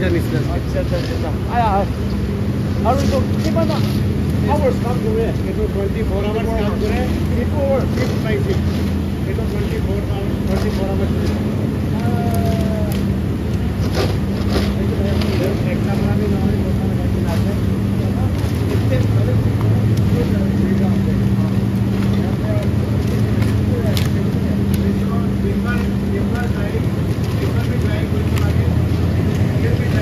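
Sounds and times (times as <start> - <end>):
factory machinery drone: 0.0 - 30.0
light clatter of wood veneer: 13.6 - 16.4.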